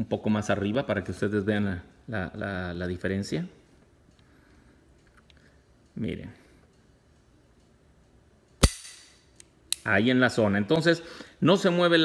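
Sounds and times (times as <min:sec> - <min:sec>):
pistol hammer click: 0:08.6 - 0:09.9.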